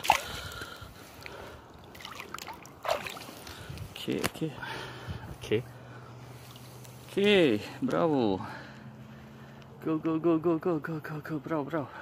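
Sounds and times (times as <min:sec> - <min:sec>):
water splash: 0:00.0 - 0:00.5, 0:01.8 - 0:03.6
river water lapping and trickling: 0:00.0 - 0:05.2, 0:05.9 - 0:08.9.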